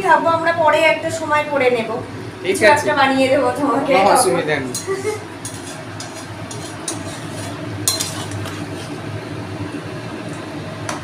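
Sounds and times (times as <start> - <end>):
metal spatula scraping pan: 5.4 - 9.0
spatula clinking against pan: 7.8 - 8.5.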